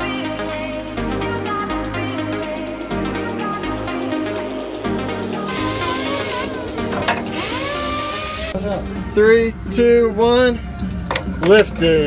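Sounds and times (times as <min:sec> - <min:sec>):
electronic dance music: 0:00.0 - 0:08.6
power tool running: 0:05.5 - 0:08.6.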